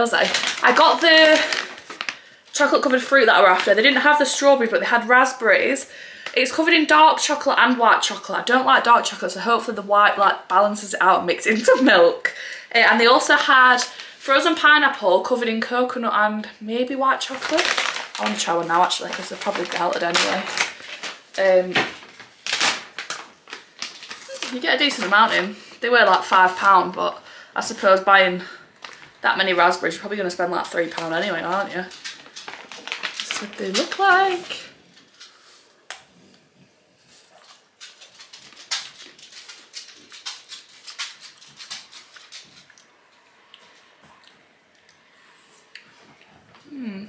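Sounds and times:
plastic pouch crinkling: 0.0 - 2.3, 17.2 - 25.4, 28.8 - 35.3, 37.8 - 42.8
chewing and crunching chocolate: 30.9 - 34.6, 37.3 - 45.0.

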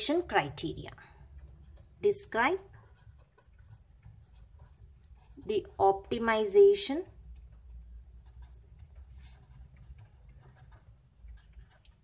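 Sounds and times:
marker scratching on paper: 1.4 - 12.0.

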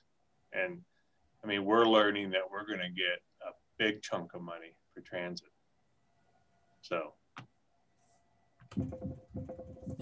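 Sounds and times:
keyboard typing: 8.6 - 10.0.

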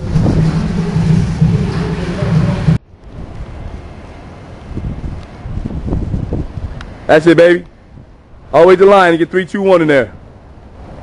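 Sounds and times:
wind rumbling on microphone: 0.0 - 8.6.

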